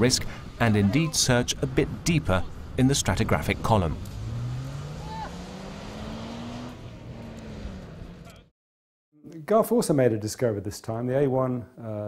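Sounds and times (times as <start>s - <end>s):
suv engine revving: 1.5s - 8.5s.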